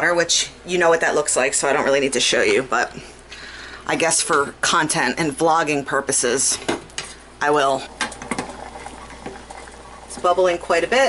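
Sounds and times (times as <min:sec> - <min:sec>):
pot of water boiling: 0:03.8 - 0:11.0.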